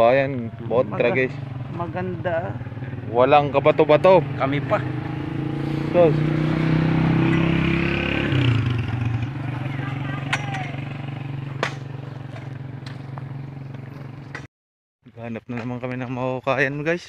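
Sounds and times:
small motorcycle engine running: 0:00.5 - 0:14.4.

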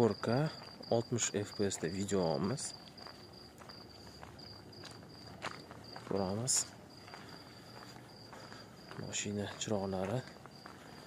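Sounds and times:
cricket chirping: 0:00.0 - 0:11.0
footsteps: 0:00.2 - 0:11.0.

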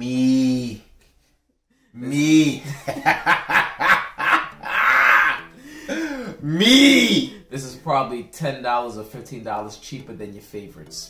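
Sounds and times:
men laughing hard: 0:02.6 - 0:06.4.

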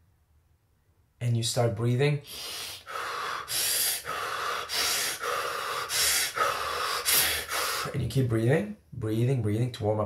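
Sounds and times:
man breathing hard and fast: 0:02.2 - 0:08.0.

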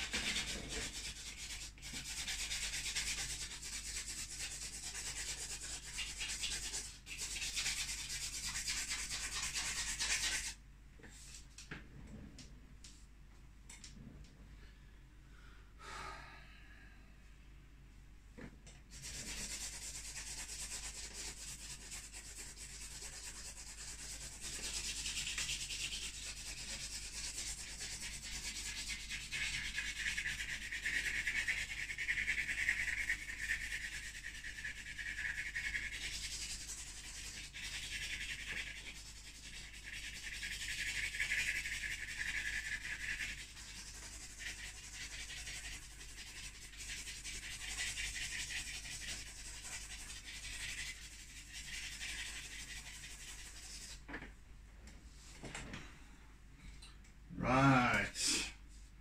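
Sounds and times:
charcoal scratching on canvas: 0:00.0 - 0:10.6, 0:18.9 - 0:54.1.

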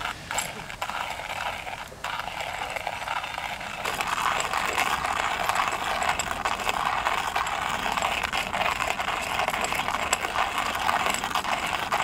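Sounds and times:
hand coffee grinder crunching beans: 0:00.0 - 0:12.0.

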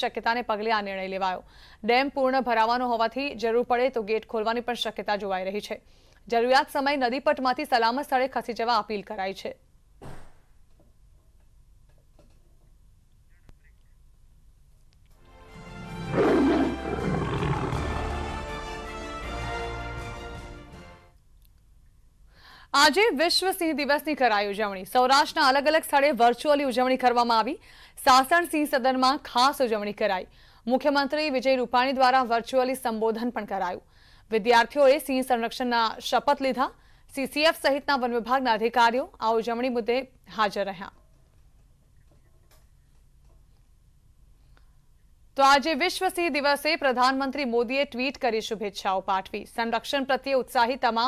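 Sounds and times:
lion roaring: 0:15.9 - 0:18.4.

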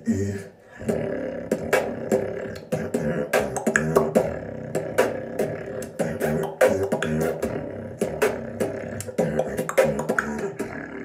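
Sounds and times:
beatboxing mouth hits: 0:00.0 - 0:11.0.

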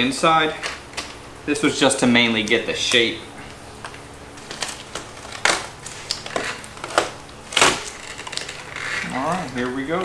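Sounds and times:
fiberglass crackling and crunching: 0:02.0 - 0:10.0.

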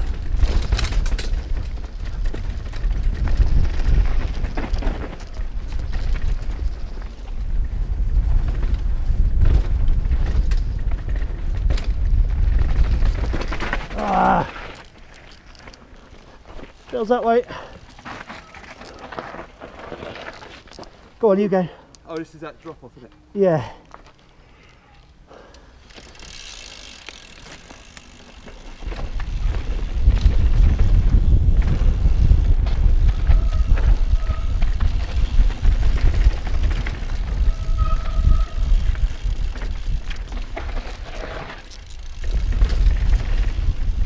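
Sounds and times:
wind buffeting on microphone: 0:00.0 - 0:13.5, 0:28.8 - 0:40.8, 0:42.0 - 0:44.0
bike rattling clicks and knocks: 0:00.0 - 0:21.2, 0:25.4 - 0:44.0
bike tyres crunching on gravel: 0:00.0 - 0:44.0
short squeal: 0:37.4 - 0:38.8.

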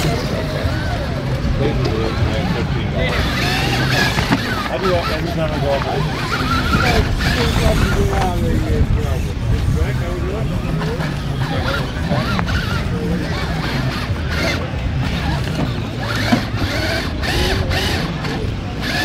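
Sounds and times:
electric motor and drivetrain whining: 0:00.0 - 0:19.0.

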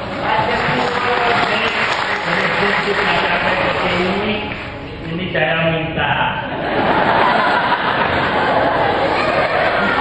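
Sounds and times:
audience applauding: 0:00.0 - 0:04.8, 0:07.3 - 0:10.0.

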